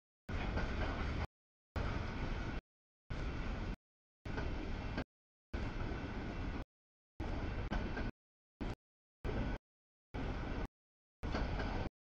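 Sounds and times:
freight train cars rumbling: 0.3 - 5.0.

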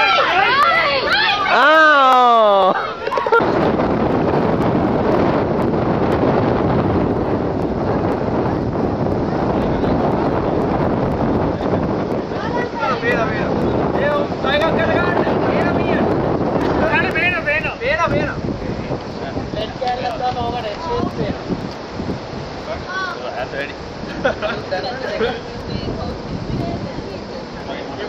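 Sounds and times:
voices calling out: 0.0 - 3.6, 9.5 - 28.0
wind buffeting microphone: 2.6 - 28.0.

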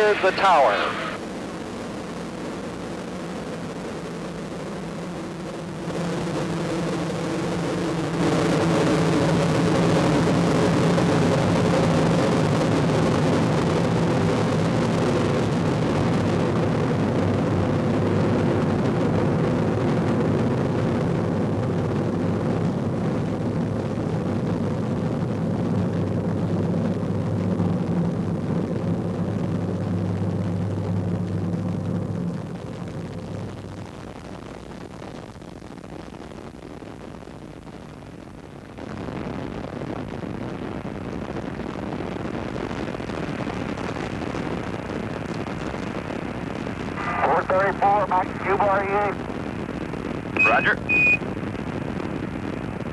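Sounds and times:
low hum: 0.0 - 1.2
rocket engines roaring: 0.0 - 1.2, 46.8 - 49.3, 50.3 - 52.9.

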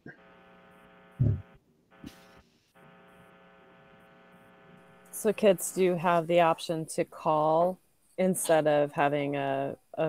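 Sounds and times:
buzzy electrical hum: 0.0 - 9.9
short low thump: 1.2 - 1.4.

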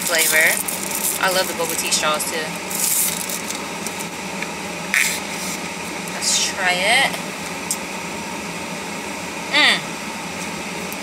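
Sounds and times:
car cabin hum and hiss: 0.0 - 11.0.

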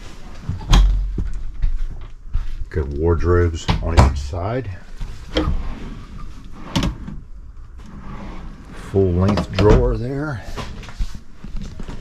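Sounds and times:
drawer being pulled open: 5.3 - 7.2, 7.8 - 10.0.

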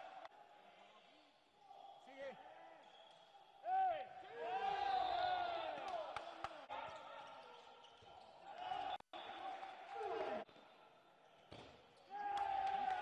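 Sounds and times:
voices echoing in hall: 0.0 - 11.4.

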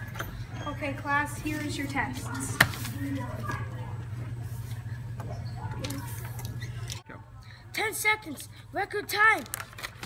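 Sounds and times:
faint indistinct voices: 0.0 - 8.9
steady low hum: 0.0 - 9.0.

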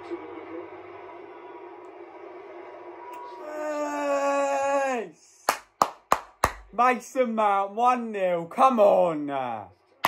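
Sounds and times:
man shouting: 3.4 - 5.2.

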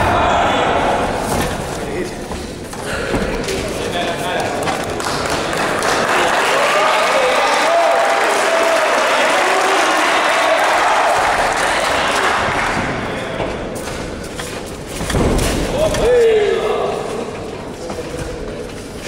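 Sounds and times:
crowd shouting and cheering: 0.0 - 1.4, 4.9 - 13.5.

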